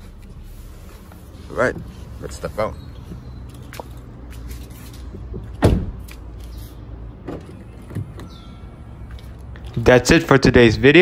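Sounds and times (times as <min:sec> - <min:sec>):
car door opening: 0:05.3 - 0:06.0
car door shutting thump: 0:05.6 - 0:06.0.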